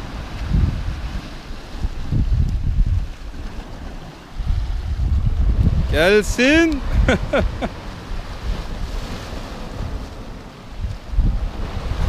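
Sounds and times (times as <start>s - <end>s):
sea waves breaking on rocks: 0.0s - 12.0s
wind buffeting microphone: 0.0s - 12.0s.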